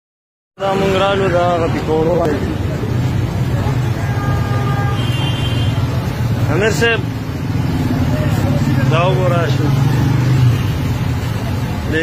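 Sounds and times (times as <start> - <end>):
vehicle engine rumbling: 0.6 - 12.0.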